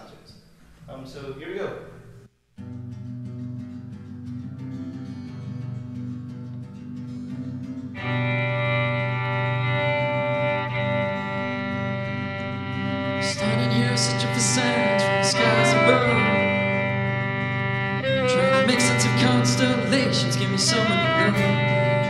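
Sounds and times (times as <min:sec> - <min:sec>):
guitars: 0:02.6 - 0:22.0
bass: 0:05.3 - 0:22.0
bowed violin: 0:08.0 - 0:22.0.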